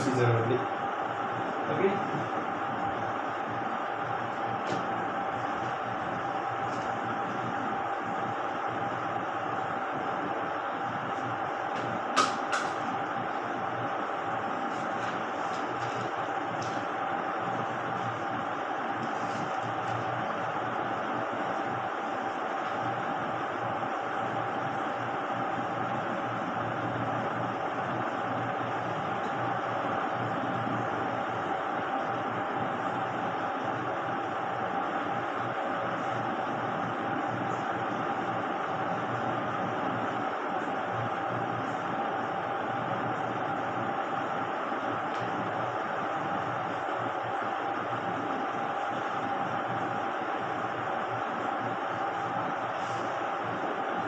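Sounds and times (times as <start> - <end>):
steady machine whine and hiss: 0.0 - 54.0.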